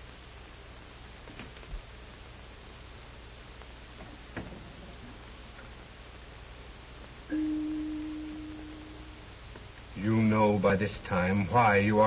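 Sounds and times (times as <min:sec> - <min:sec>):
bell-like chime: 0:07.3 - 0:09.0.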